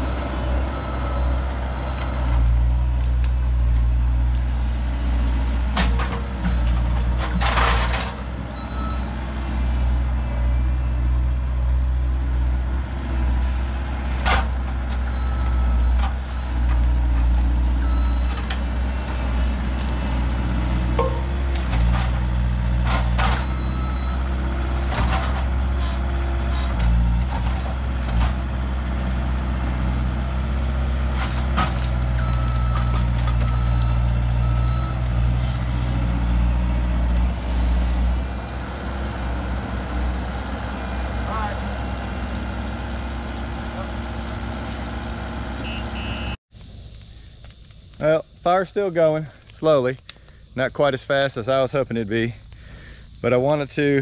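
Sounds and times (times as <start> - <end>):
diesel engine working under load: 0.0 - 54.0
backup alarm beeping: 17.8 - 19.2, 23.4 - 24.3, 45.6 - 46.4
branches cracking and snapping: 18.3 - 23.5, 30.8 - 34.0, 46.6 - 48.1.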